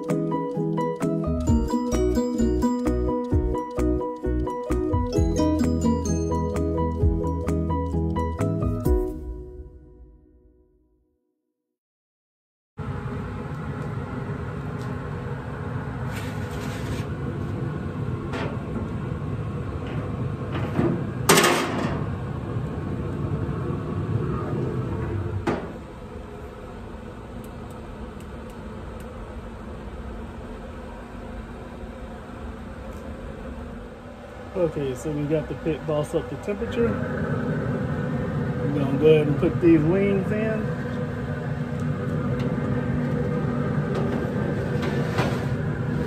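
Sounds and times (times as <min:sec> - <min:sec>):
grill fan rushing: 0:12.8 - 0:46.0.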